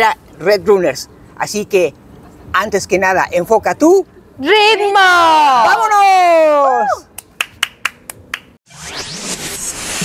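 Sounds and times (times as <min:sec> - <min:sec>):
hand claps: 0:07.1 - 0:08.6
rising whoosh: 0:08.7 - 0:10.0.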